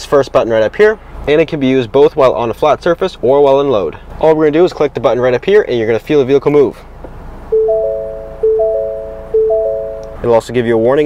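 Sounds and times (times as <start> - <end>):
rising three-note warning chime: 7.5 - 10.3.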